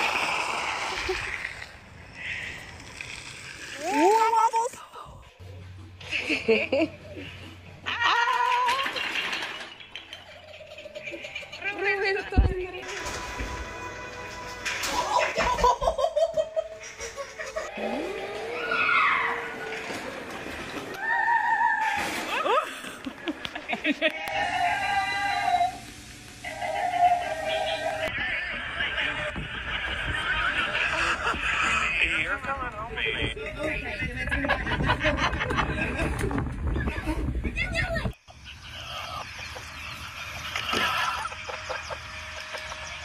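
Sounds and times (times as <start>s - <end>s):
wooden block tower falling: 8.6s - 10.2s
music: 12.7s - 15.4s.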